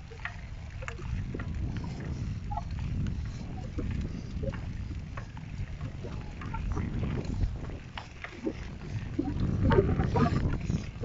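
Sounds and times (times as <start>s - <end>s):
bicycle wheels knocking and rattling: 0.0s - 11.0s
wind buffeting microphone: 0.0s - 11.0s.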